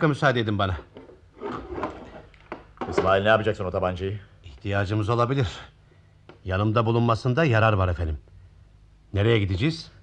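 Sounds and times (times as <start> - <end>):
drawer opened and rummaged in: 1.0 - 3.2.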